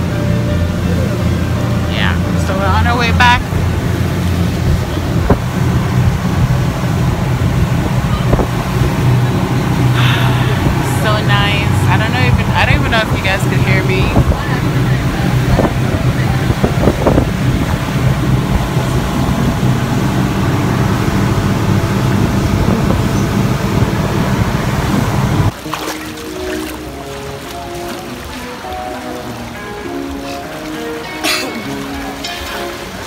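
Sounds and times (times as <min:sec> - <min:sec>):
background music: 0:00.0 - 0:05.2, 0:25.5 - 0:33.0
boat engines humming: 0:00.0 - 0:33.0
water rushing: 0:00.0 - 0:33.0
wind: 0:00.0 - 0:33.0.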